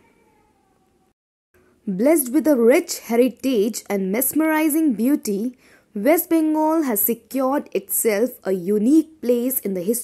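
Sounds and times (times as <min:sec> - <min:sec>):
woman narrating: 0:01.8 - 0:10.0.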